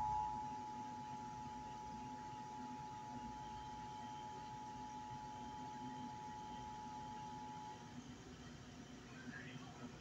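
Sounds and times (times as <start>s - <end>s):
steady high tone: 0.0s - 0.8s
low hum: 0.0s - 1.5s.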